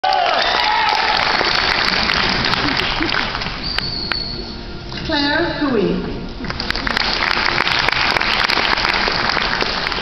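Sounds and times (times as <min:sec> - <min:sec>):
audience applauding: 0:00.0 - 0:04.4, 0:06.4 - 0:10.0.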